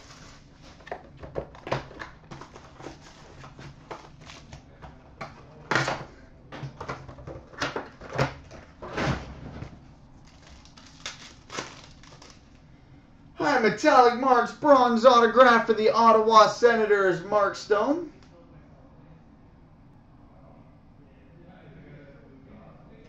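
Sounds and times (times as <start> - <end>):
foil crackles: 10.2 - 12.6
foil pack crinkling: 10.2 - 12.6.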